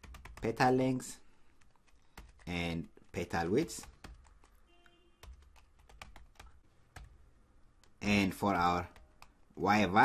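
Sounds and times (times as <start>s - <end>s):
faint typing on keyboard: 0.0s - 10.0s.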